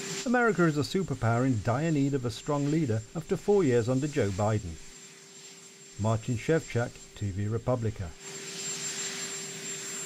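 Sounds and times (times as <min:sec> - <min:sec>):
helicopter turbine engines running: 0:00.0 - 0:10.0.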